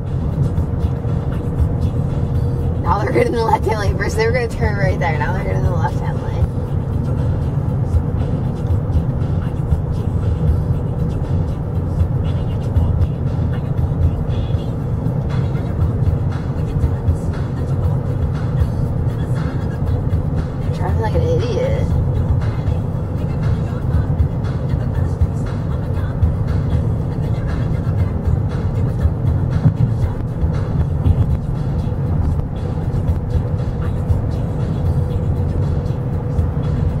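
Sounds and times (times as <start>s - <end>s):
background music: 0.0s - 37.0s
car road and engine rumble: 0.0s - 37.0s.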